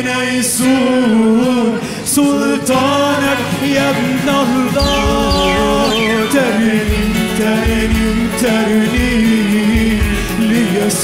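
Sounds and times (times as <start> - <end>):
band playing worship music: 0.0 - 11.0
held sung notes: 4.8 - 7.5.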